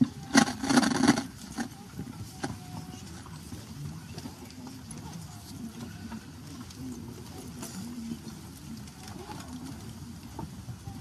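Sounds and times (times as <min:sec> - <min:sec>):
faint voices murmuring: 0:00.0 - 0:11.0.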